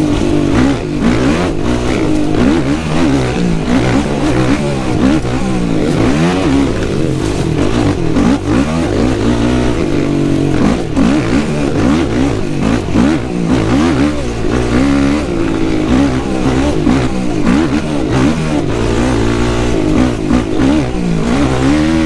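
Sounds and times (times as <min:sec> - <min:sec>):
motorbike engine revving: 0:00.0 - 0:22.0.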